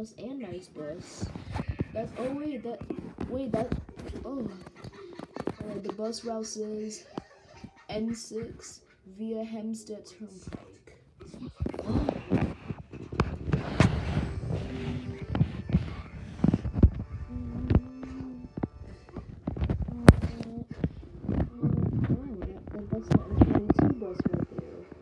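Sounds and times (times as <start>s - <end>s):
wordless vocal sounds: 10.2s - 25.0s.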